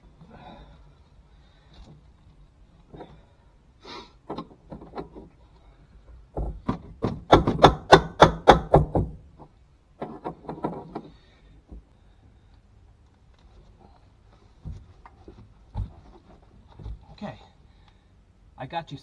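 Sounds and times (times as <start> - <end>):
sharp knocks and thumps: 4.2 - 5.4, 6.3 - 11.9, 14.6 - 17.2.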